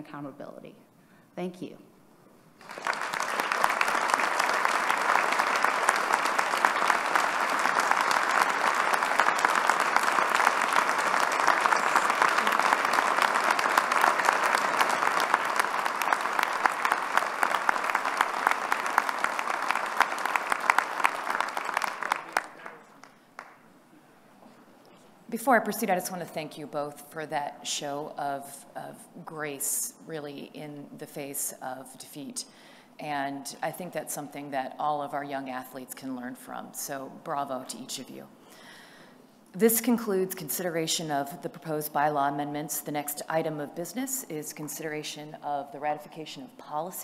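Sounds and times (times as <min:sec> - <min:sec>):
audience applauding: 0:02.6 - 0:23.6.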